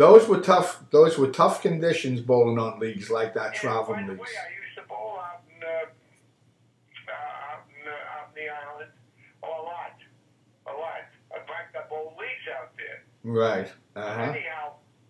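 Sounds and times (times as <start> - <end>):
man talking over telephone: 0.0 - 5.8, 7.0 - 10.0, 10.7 - 14.7
faint steady hum: 0.0 - 15.0.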